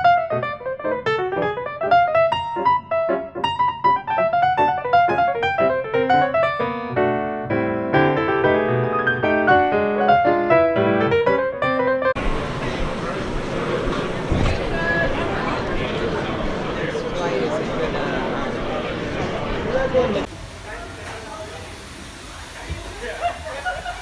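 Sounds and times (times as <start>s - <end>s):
fast piano music: 0.0s - 13.8s
crowded airport background noise: 12.2s - 20.3s.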